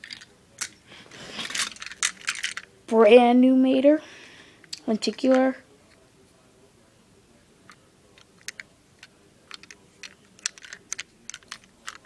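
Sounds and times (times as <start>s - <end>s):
toy car clicking and tapping: 8.2s - 12.0s.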